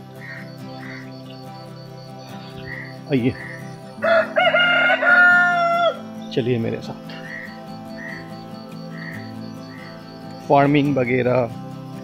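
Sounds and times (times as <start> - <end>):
rooster crowing: 4.0 - 6.0.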